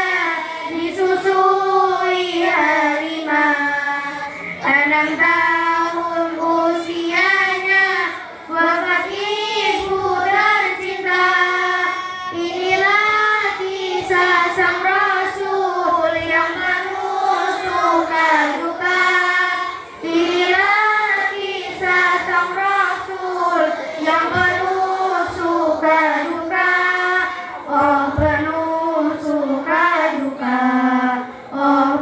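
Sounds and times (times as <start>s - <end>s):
girl singing into microphone: 0.0s - 32.0s
girls chanting devotional song: 0.0s - 32.0s.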